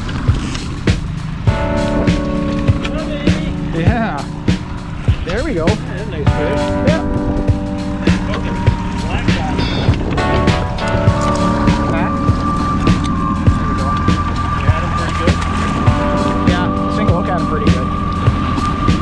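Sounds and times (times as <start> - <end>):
music: 0.0 - 19.0
outboard motor running: 0.0 - 19.0
motor knocking: 7.2 - 19.0.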